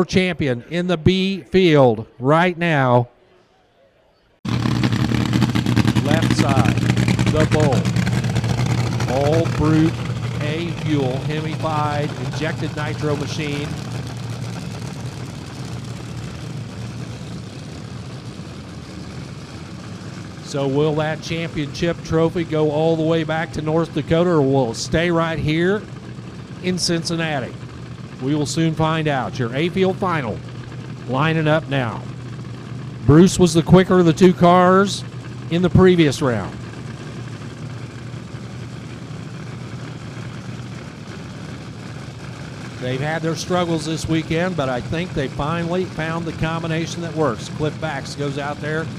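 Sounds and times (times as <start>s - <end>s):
dragster engine idling: 4.5s - 48.9s.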